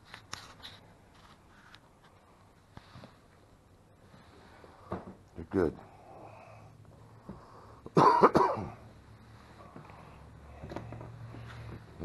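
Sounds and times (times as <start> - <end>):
person coughing: 7.9 - 8.8.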